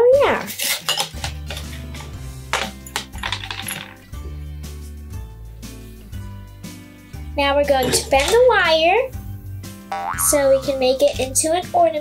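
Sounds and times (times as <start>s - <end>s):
glassy clinking rattle: 0.7s - 4.2s, 7.8s - 8.4s
background music with bass line: 1.3s - 12.0s.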